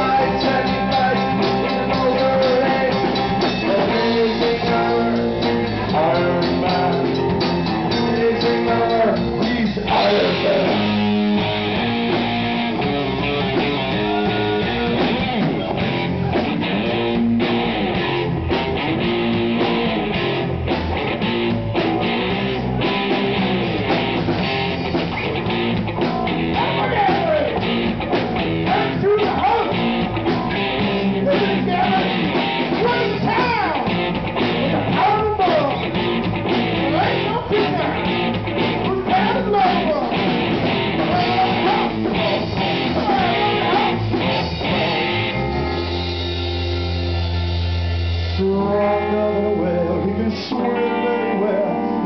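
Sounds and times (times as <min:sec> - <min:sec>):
drum kit: 0:00.0 - 0:50.2
bass guitar: 0:00.0 - 0:52.0
distorted electric guitar: 0:00.0 - 0:52.0
live rock band playing: 0:00.0 - 0:52.0.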